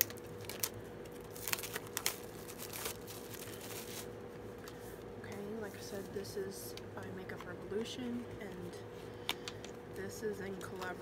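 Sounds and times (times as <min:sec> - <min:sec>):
packaging crinkling and crackling: 0:00.0 - 0:05.4.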